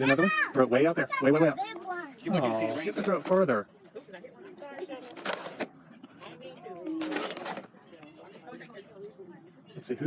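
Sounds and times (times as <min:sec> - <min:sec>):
faint voices talking: 0:00.0 - 0:10.0.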